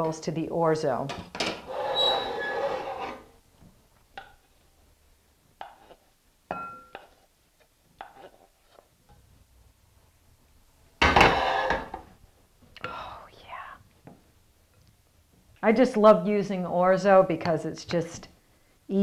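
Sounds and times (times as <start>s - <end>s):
wooden spoon scraping a wok: 1.6s - 3.3s, 5.5s - 6.2s, 6.9s - 9.2s, 11.2s - 12.1s
spoon wok and bowl clinking: 6.5s - 7.2s.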